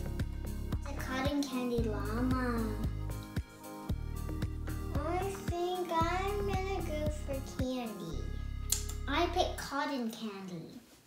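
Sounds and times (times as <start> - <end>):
background music with steady beat: 0.0 - 9.7
child singing: 5.0 - 8.2.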